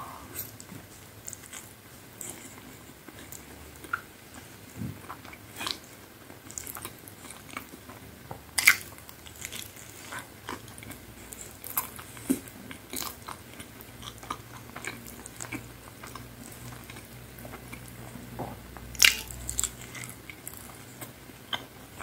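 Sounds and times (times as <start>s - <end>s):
chewing crisp pizza crust: 0.4s - 22.0s.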